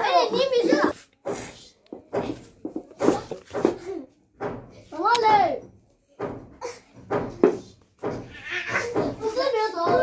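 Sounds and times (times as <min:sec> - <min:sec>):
children laughing: 0:03.0 - 0:04.3, 0:08.3 - 0:10.0.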